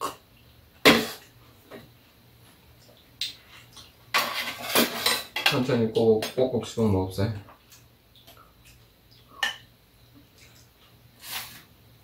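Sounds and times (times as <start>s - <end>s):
metal utensils clinking on a dish: 4.1s - 6.4s.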